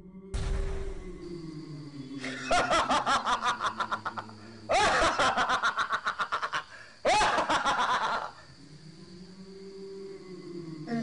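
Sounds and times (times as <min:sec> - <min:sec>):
person cackling laughter: 0:02.2 - 0:08.4.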